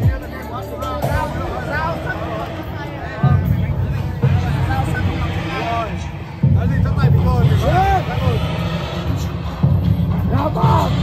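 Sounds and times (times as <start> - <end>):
music with heavy bass line: 0.0 - 11.0.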